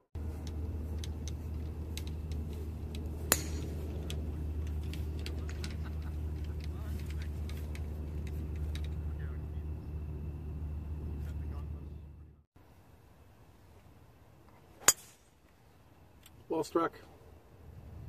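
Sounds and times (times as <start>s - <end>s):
steady low rumble: 0.0s - 12.5s
golf club striking ball: 0.4s - 5.6s, 14.8s - 15.4s.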